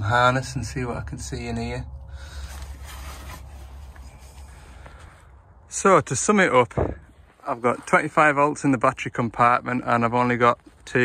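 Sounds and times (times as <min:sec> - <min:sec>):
low steady rumble: 0:00.0 - 0:11.0
rustling and handling noise: 0:02.1 - 0:05.4.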